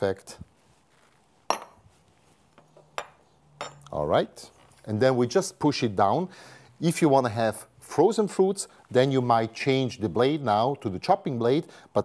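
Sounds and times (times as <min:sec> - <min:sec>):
metal spoon clinking against glass: 0:02.7 - 0:03.9.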